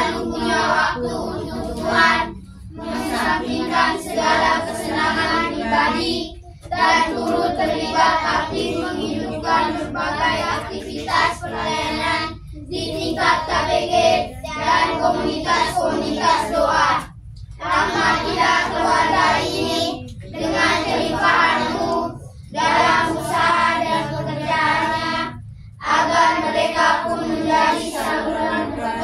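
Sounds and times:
children singing in unison: 0.0s - 29.0s.

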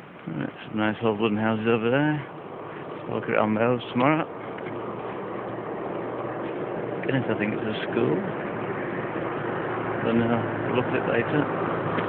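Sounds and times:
road noise of passing vehicle: 0.0s - 12.0s.

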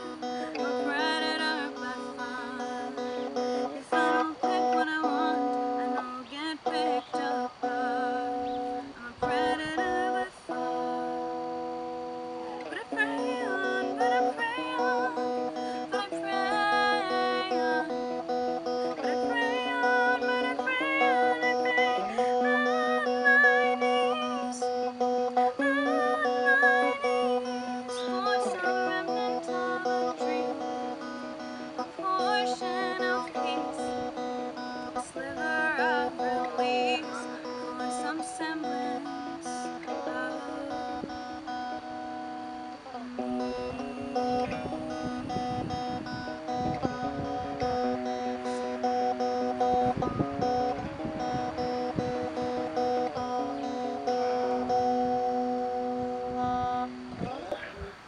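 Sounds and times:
woman singing slow song: 0.0s - 57.1s
clean electric guitar: 0.0s - 58.0s.

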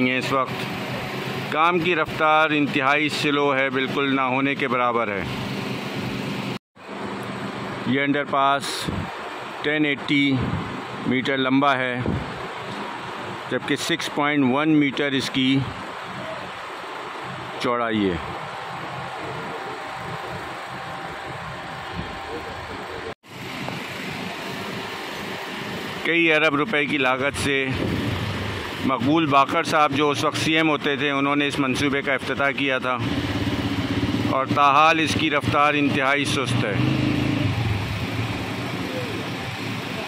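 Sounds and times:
traffic hum: 0.0s - 40.0s
wind on microphone: 8.8s - 9.2s, 12.0s - 12.4s, 27.7s - 28.6s.

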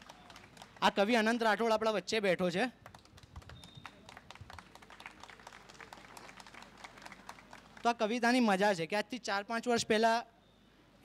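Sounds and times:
faint audience clapping: 0.0s - 1.4s, 2.8s - 8.0s.

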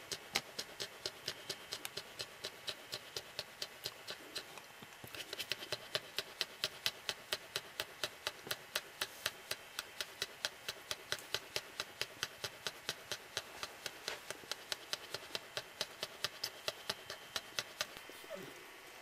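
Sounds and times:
dog panting fast: 0.0s - 18.2s.

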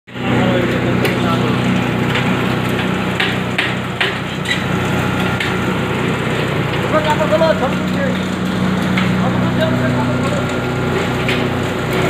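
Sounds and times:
grinding machine running: 0.1s - 12.0s.

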